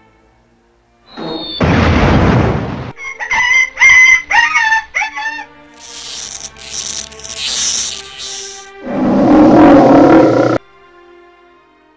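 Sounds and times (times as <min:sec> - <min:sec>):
hissing noise: 0:05.8 - 0:09.5.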